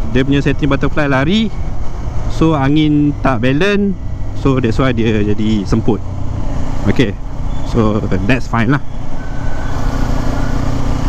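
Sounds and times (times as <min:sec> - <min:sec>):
motorcycle engine running: 0:00.0 - 0:11.0
wind and road noise: 0:00.0 - 0:11.0.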